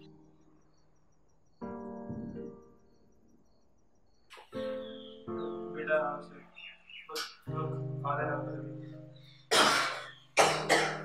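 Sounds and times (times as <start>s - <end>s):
man coughing: 9.5s - 11.0s.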